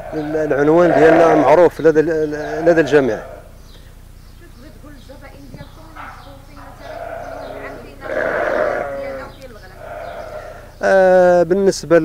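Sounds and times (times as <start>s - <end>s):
sheep bleating: 0.0s - 3.6s, 6.0s - 11.2s.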